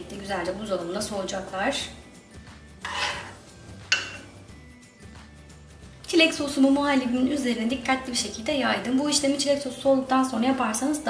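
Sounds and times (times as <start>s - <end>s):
metal spoon scraping in a bowl: 2.8s - 4.4s
spoon clinking against bowl: 3.9s - 4.4s.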